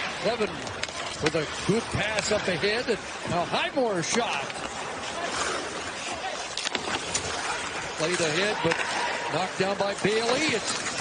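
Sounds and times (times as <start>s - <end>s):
arena crowd murmur: 0.0s - 10.8s.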